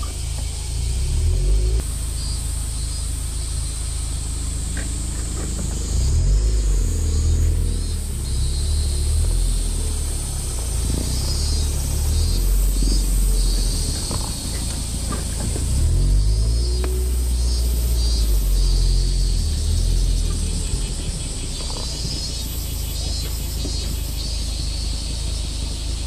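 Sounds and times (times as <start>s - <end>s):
car engine rumble: 0.0s - 26.0s
wind and road noise hiss: 0.0s - 26.0s.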